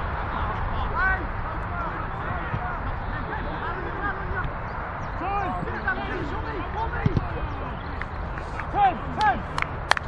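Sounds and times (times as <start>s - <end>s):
players shouting: 0.0s - 9.6s.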